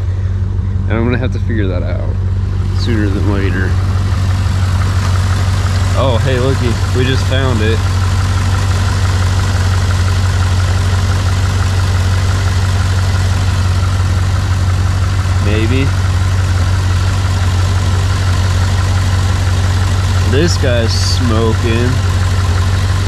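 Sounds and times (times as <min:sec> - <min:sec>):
car engine idling: 0:00.0 - 0:23.0.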